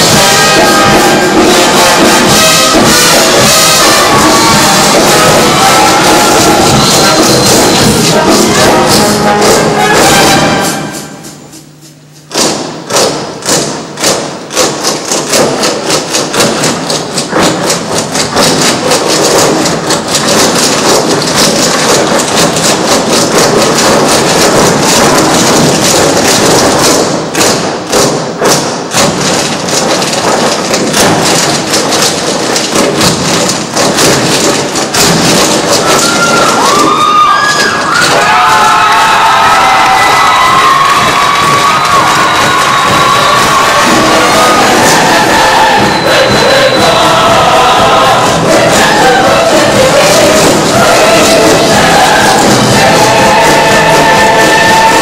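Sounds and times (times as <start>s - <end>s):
audience applause: 0.0s - 10.4s, 35.6s - 55.0s
crowd cheering: 0.0s - 10.9s, 35.5s - 55.0s
music: 0.0s - 55.0s
whoops and shouts: 35.8s - 46.2s.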